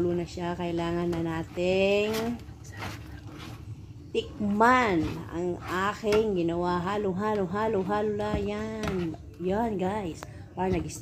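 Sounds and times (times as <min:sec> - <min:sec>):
spatula scraping pan: 0:00.0 - 0:11.0.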